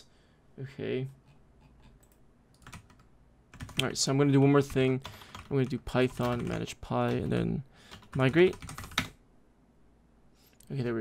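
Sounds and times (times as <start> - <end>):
computer keyboard keystrokes: 1.8 - 3.9, 5.0 - 7.3, 7.9 - 9.2.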